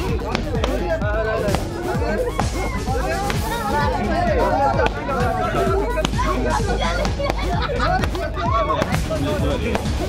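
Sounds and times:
children shouting and cheering: 0.0 - 9.8
balloons bursting: 0.0 - 10.0.

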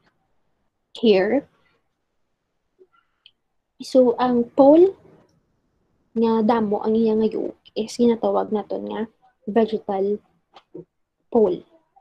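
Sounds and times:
woman speaking: 1.0 - 1.4, 3.8 - 5.0, 6.2 - 10.2, 11.4 - 11.6.

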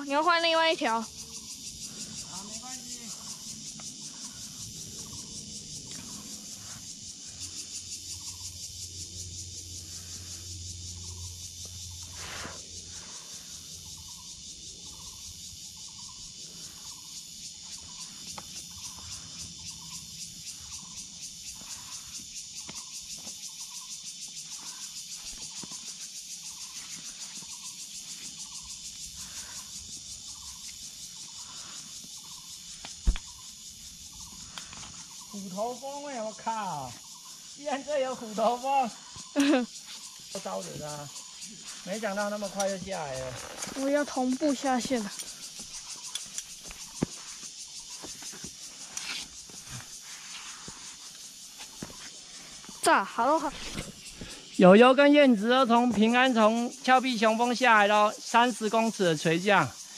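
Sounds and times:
high chorus of insects: 0.0 - 59.9
sharp knock: 33.0 - 33.3.

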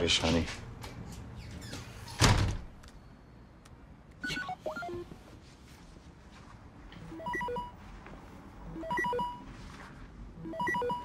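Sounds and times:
video call electronic beeps: 4.2 - 5.0, 7.1 - 7.8, 8.8 - 9.4, 10.5 - 11.0.

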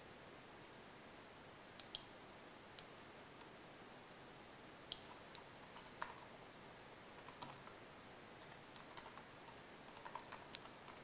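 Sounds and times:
faint laptop keyboard typing: 4.9 - 6.3, 7.1 - 7.8, 8.4 - 11.0.

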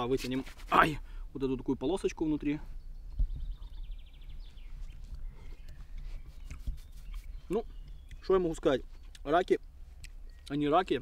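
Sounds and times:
songbird singing with trill: 2.0 - 11.0
low microphone rumble: 2.9 - 8.1.

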